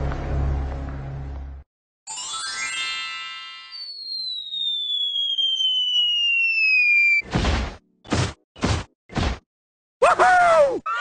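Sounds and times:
descending whistle sound effect: 3.7 - 7.2.

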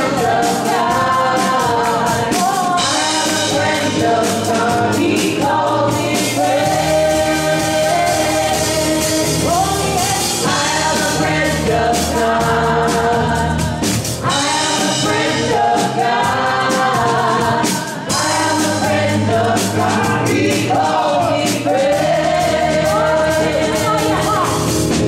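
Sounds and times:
amplified band with steady beat: 0.0 - 25.0
group singing gospel song: 0.0 - 25.0.

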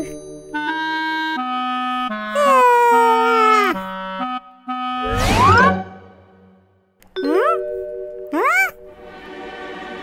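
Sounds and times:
cartoon vocal swoops: 8.4 - 8.8.

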